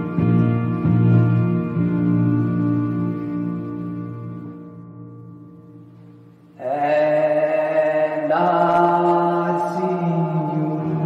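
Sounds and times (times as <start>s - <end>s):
keyboard playing sustained chords: 0.0s - 11.0s.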